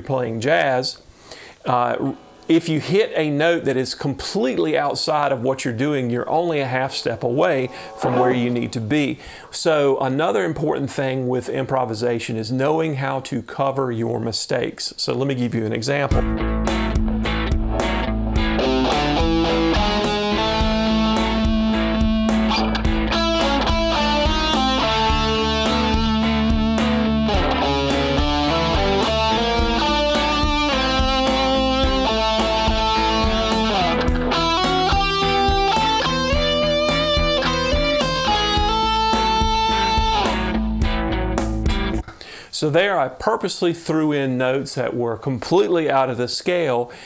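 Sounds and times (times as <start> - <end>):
electric guitar lead with bends: 7.7 - 9.3, 16.2 - 42.0
backing track with steady beat: 16.1 - 42.1.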